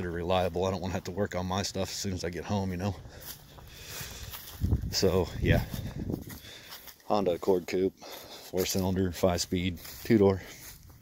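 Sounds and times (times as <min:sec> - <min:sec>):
footsteps on dry grass: 0:00.0 - 0:11.0
wind rumble on microphone: 0:04.4 - 0:06.5.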